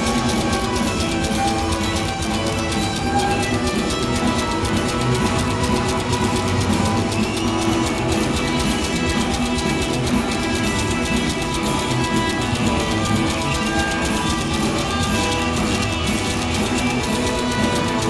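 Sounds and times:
electric guitar: 0:00.0 - 0:18.0
rockabilly band playing: 0:00.0 - 0:18.0.

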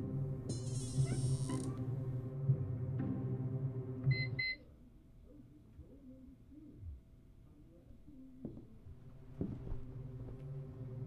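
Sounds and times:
film score music: 0:00.0 - 0:04.6.

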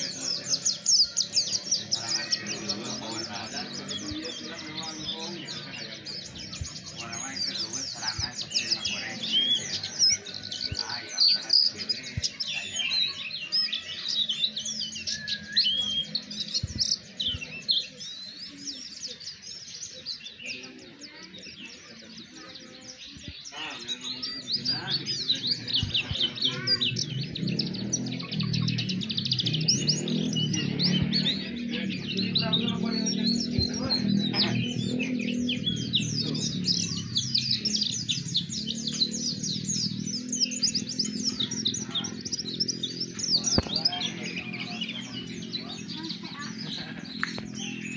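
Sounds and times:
bird twittering chirps: 0:00.0 - 0:47.9.

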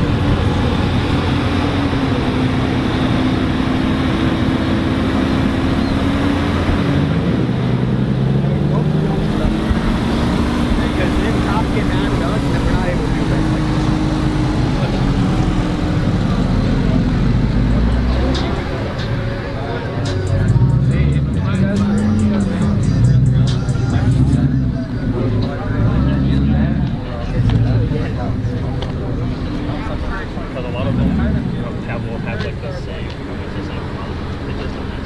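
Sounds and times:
car engines driving past slowly: 0:00.0 - 0:35.0.

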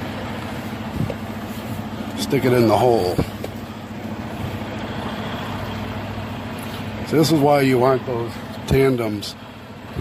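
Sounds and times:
truck diesel engine running: 0:00.0 - 0:10.0.

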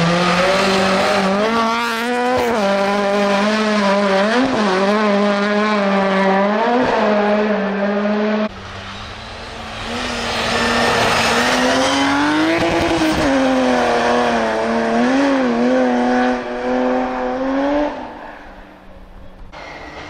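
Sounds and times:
rally car engine at high revs: 0:00.0 - 0:18.6
rally car engine approaching: 0:00.0 - 0:20.0.

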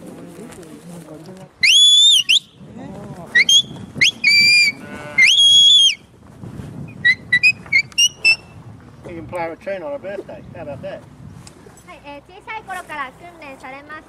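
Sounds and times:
high whistled commands: 0:01.6 - 0:02.6, 0:03.4 - 0:06.0, 0:06.9 - 0:08.5.

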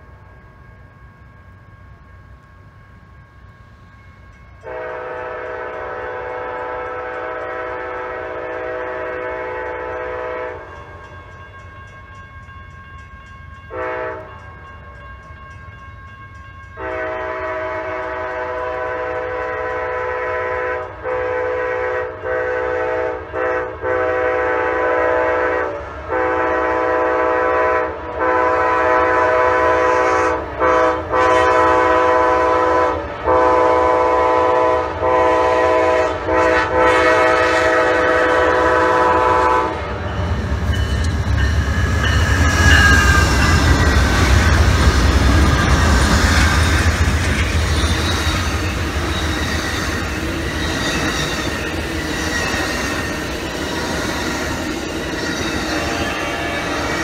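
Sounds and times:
diesel locomotive engine rumble: 0:00.0 - 0:57.0
train wheels on rails: 0:00.0 - 0:57.0
locomotive air horn blasts: 0:04.6 - 0:10.8, 0:13.7 - 0:14.4, 0:16.8 - 0:40.2.

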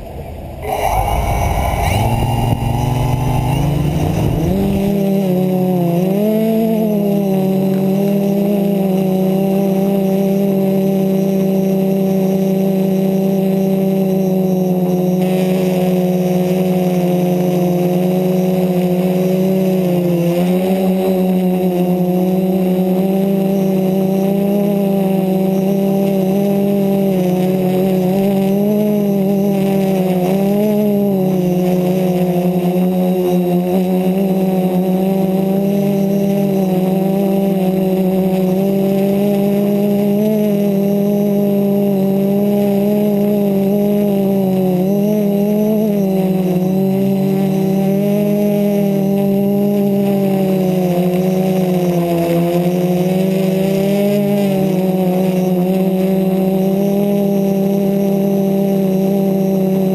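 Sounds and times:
quadcopter motors humming: 0:00.0 - 0:59.9.

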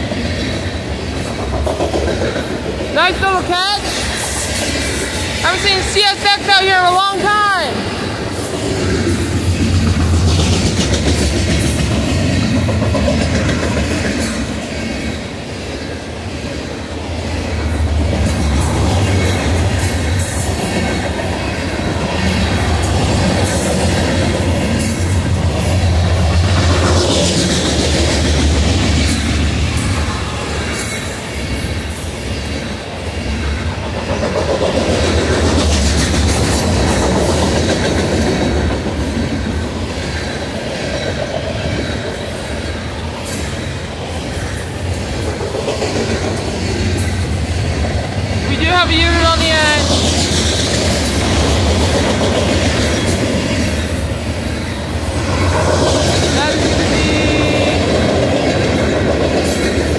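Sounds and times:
wheels clacking over rail joints: 0:00.0 - 0:05.4, 0:07.8 - 0:49.2, 0:49.8 - 0:59.9
freight train wheels rumbling on rails: 0:00.0 - 0:59.9.

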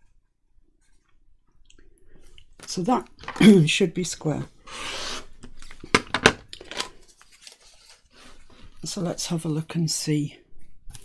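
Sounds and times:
ruler and card rustling: 0:05.6 - 0:08.1.

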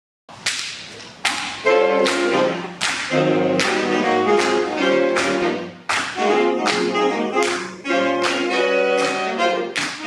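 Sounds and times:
jazz big band: 0:01.5 - 0:10.0
horn section held chord: 0:01.6 - 0:10.0.

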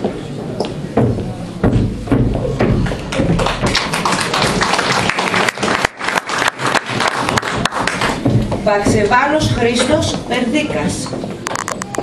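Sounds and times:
audience applauding: 0:02.9 - 0:08.3.

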